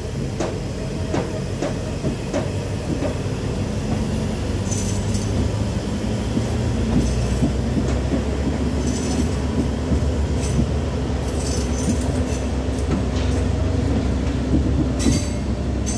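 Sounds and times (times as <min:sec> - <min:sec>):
train wheels rumbling on track: 0:00.0 - 0:15.9.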